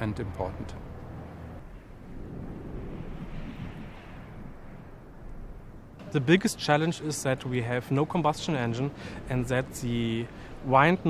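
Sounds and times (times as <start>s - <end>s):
low rumble: 0.0s - 6.4s
steady wind-like rushing: 0.0s - 11.0s.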